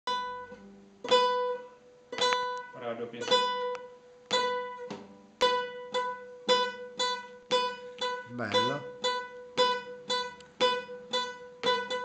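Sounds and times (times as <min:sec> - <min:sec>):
plucked guitar note ringing: 0:00.1 - 0:12.0.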